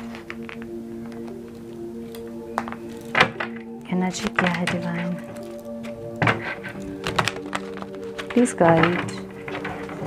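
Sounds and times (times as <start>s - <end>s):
background music held notes: 0.0s - 10.0s
cards being shuffled: 5.4s - 10.0s.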